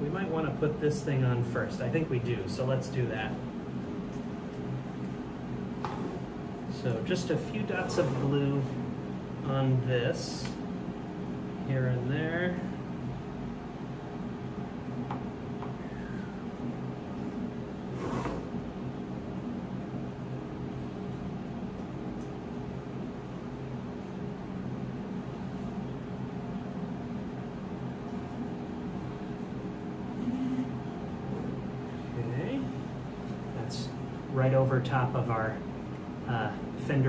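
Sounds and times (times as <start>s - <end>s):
low hum of running equipment: 0.0s - 37.0s.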